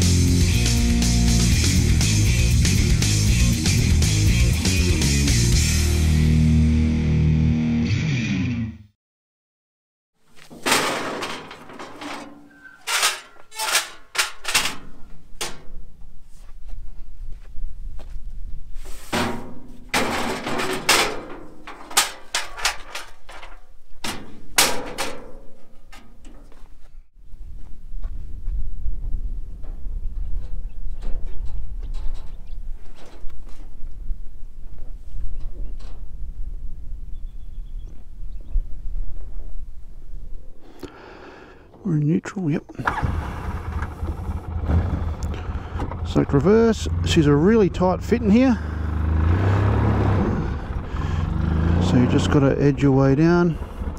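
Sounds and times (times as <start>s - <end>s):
rock guitar music: 0.0s - 8.9s
metal ramps clanking and rattling: 10.4s - 15.9s, 19.1s - 26.7s, 29.6s - 33.7s
steady low rumble: 43.3s - 53.9s.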